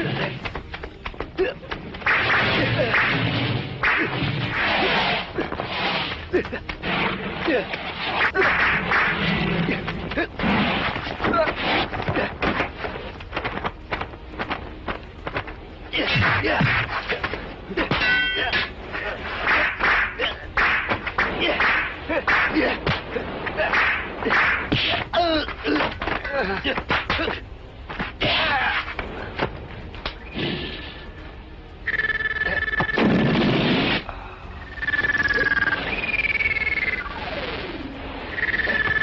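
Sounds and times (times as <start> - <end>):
metal weapons clanging: 17.8 - 20.2.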